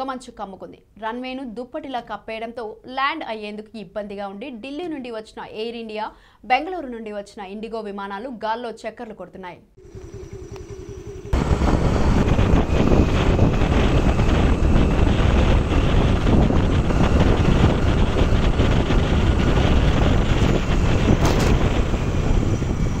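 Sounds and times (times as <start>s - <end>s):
wind buffeting microphone: 10.0s - 23.0s.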